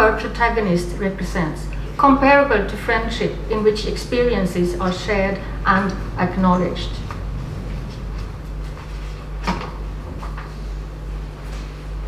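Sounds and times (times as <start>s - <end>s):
low hum of sound system: 0.0s - 12.0s.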